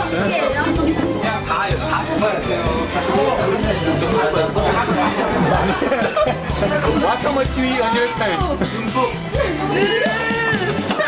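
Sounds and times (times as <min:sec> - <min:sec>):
music with steady beat: 0:00.0 - 0:11.0
young people chattering: 0:00.0 - 0:11.0.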